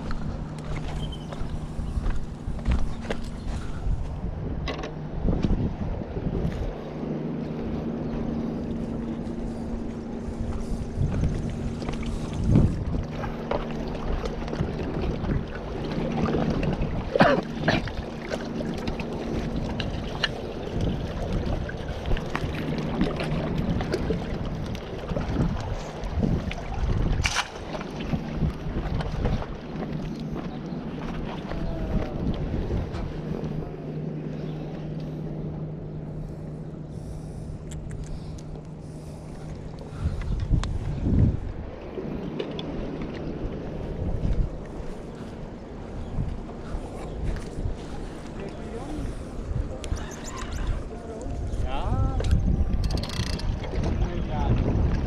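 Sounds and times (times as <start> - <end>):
shoreline surf: 0.0 - 55.0
steady low hum: 0.0 - 55.0
wind buffeting microphone: 0.0 - 55.0.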